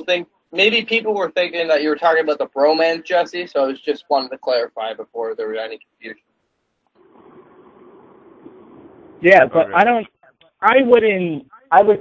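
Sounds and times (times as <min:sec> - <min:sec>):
telephone line hiss and hum: 0:07.0 - 0:09.2.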